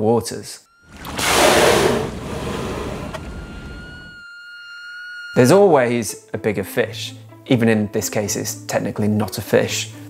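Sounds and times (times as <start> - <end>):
high held tone: 0.7 - 6.0.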